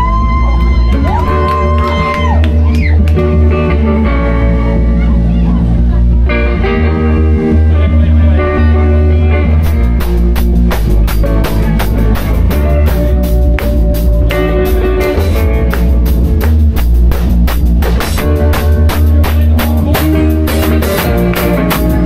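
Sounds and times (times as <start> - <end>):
bass guitar: 0.0 - 22.0
electric guitars: 0.0 - 22.0
drum kit: 9.3 - 22.0.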